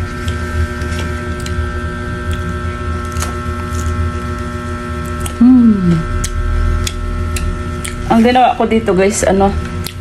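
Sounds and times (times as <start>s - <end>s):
person chewing food: 0.0s - 8.1s, 9.8s - 10.0s
steady electrical hum: 0.0s - 10.0s.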